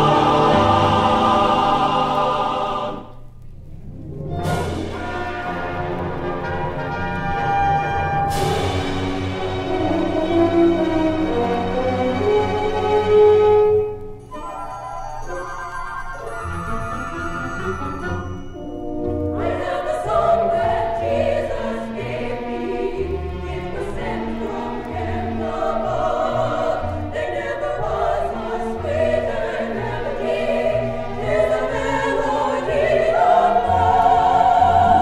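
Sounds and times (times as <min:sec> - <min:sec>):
choir singing with accompaniment: 0:00.0 - 0:03.2, 0:17.7 - 0:35.0.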